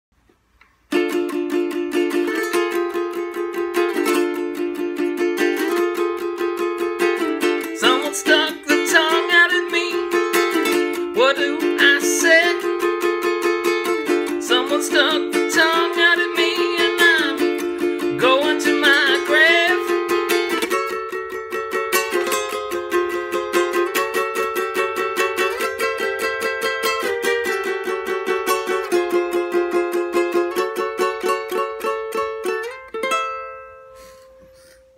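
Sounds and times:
ukulele strumming: 0.3s - 34.9s
man singing: 7.4s - 13.0s, 14.0s - 20.2s.

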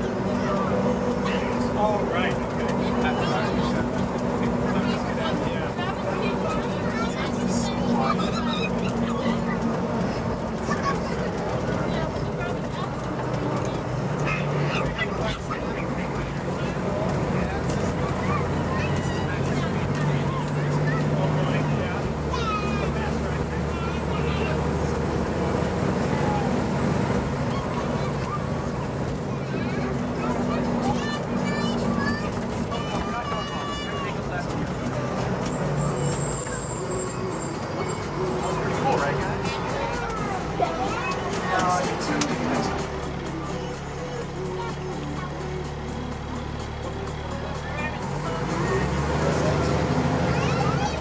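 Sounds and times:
diesel engine and road drone: 0.0s - 51.0s
faint voices: 0.0s - 51.0s
music: 38.5s - 51.0s.

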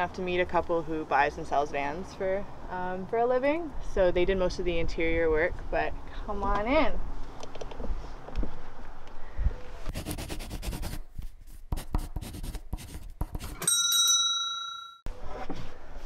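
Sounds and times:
pen writing sound effect: 9.9s - 13.7s
bright bell ding: 13.6s - 15.1s.

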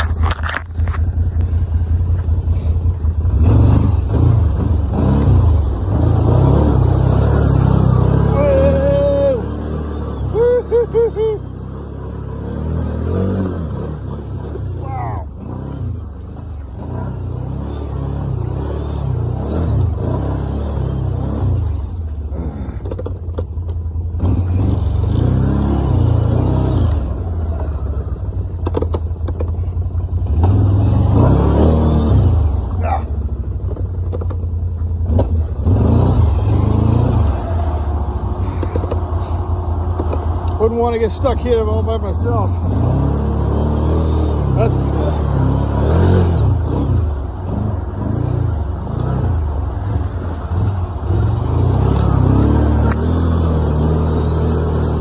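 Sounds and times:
atv engine revving: 0.0s - 55.0s.

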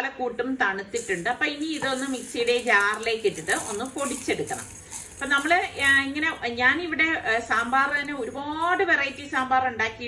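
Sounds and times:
woman narrating: 0.0s - 10.0s.

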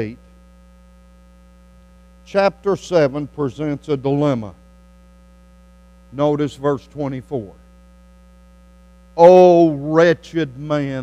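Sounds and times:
buzzy electrical mains hum: 0.0s - 11.0s.

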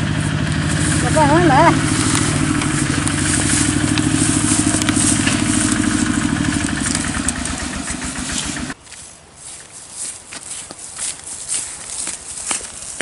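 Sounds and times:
small engine running: 0.0s - 8.8s.

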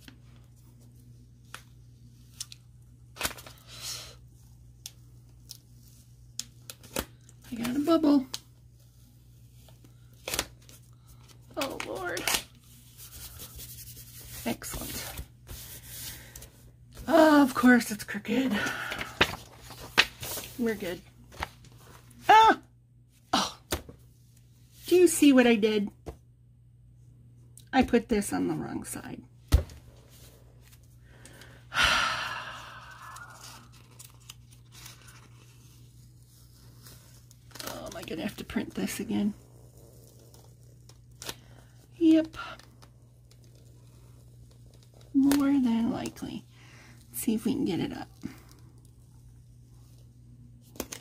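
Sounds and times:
low steady hum: 0.0s - 51.0s
hands rubbing paper: 12.7s - 16.4s
person sighing heavily: 31.7s - 33.6s.

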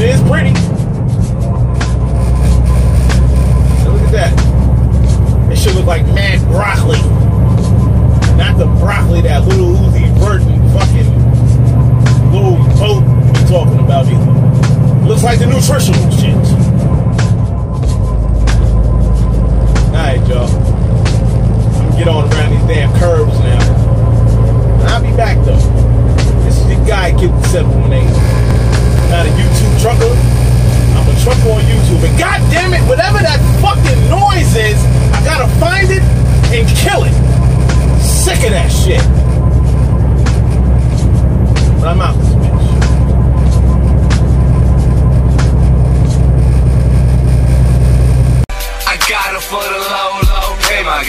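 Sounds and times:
hip hop music with rapping: 0.0s - 47.6s, 48.3s - 51.0s
truck engine and tyres droning: 0.0s - 48.5s
music with vocals: 0.0s - 51.0s.

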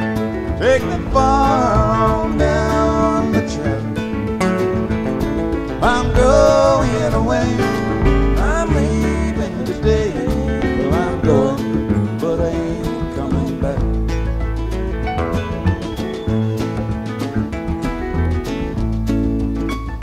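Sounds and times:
acoustic guitars: 0.0s - 20.0s
bass: 0.0s - 20.0s
sliding held melody notes: 0.0s - 20.0s
drums on a steady beat: 0.8s - 14.4s.

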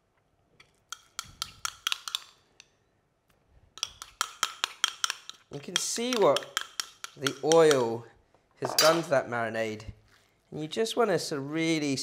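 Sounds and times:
metal spoon scraping ceramic bowl: 3.8s - 7.9s.

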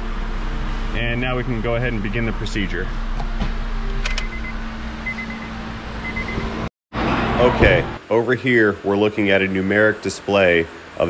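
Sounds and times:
high warning beeps: 4.2s - 6.5s.

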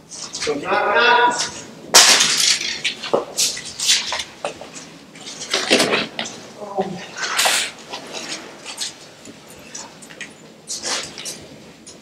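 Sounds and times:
footsteps crunching over debris: 1.3s - 12.0s.

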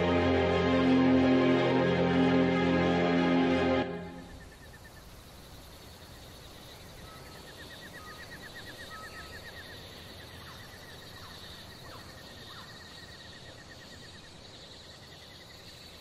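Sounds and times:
brief falling notes: 0.0s - 4.4s.

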